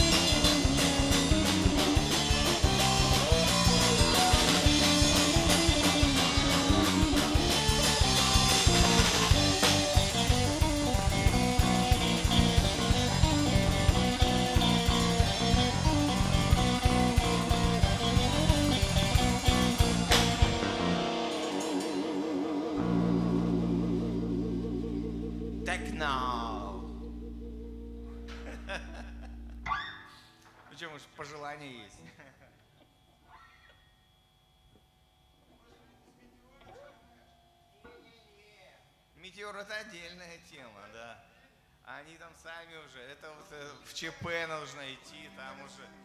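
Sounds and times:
drum kit: 0:00.0 - 0:27.3
bass guitar: 0:00.0 - 0:30.1
electric guitar: 0:00.0 - 0:30.6.

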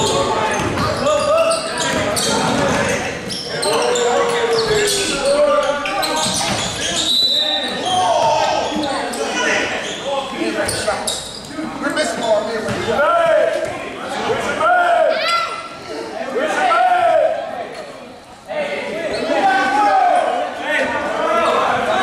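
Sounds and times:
players calling out: 0:00.0 - 0:18.0.

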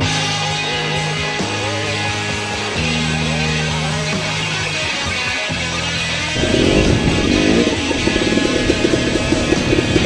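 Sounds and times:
background music: 0:00.0 - 0:10.0
dirt bike engine revving: 0:00.0 - 0:10.0.

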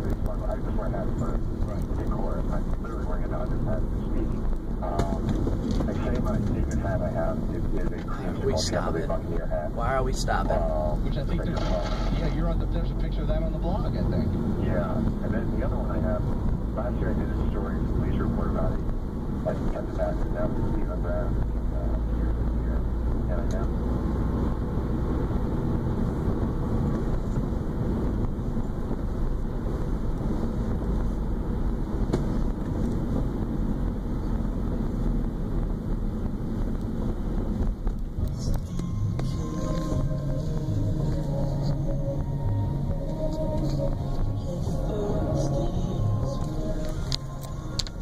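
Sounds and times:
faint voices: 0:00.0 - 0:18.8, 0:19.4 - 0:23.7
car road and engine noise: 0:00.0 - 0:48.0.

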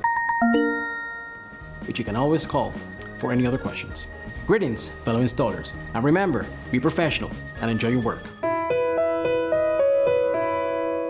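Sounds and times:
electronic chime jingle: 0:00.0 - 0:02.8.

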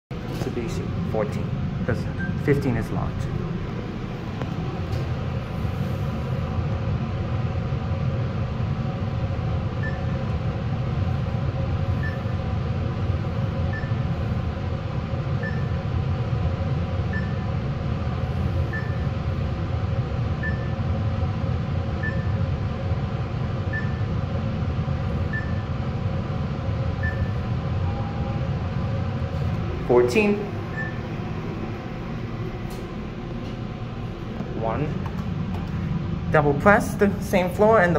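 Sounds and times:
elevator hum and rumble: 0:00.1 - 0:37.9.

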